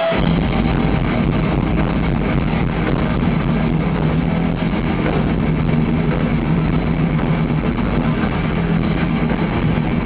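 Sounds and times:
bass guitar: 0.0 - 10.0
distorted electric guitars: 0.0 - 10.0
fast drumming: 0.1 - 10.0.

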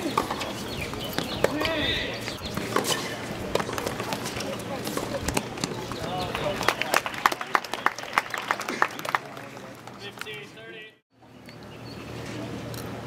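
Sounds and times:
tennis balls struck by rackets: 0.0 - 6.6
people talking in background: 0.0 - 10.4.

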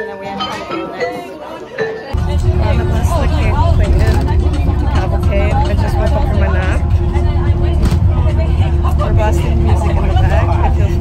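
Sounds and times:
many people talking: 0.0 - 11.0
bus engine rumble: 2.2 - 11.0.

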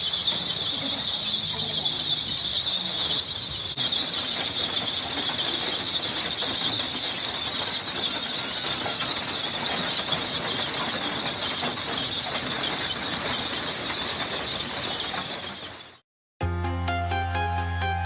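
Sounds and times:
chicks peeping: 0.0 - 16.0.

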